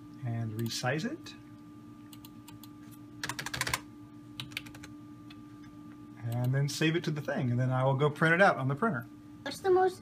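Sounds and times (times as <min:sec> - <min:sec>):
faint steady hum: 0:00.0 - 0:10.0
keyboard typing: 0:02.1 - 0:04.9.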